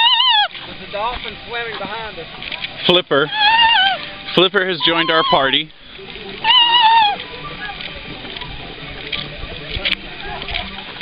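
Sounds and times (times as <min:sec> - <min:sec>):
grass blade whistle squeal: 0:04.6 - 0:05.6.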